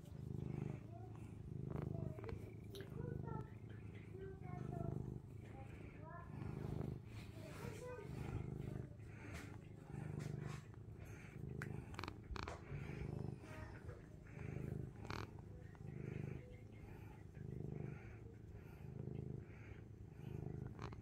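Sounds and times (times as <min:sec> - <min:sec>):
cat purring: 0:00.0 - 0:21.0.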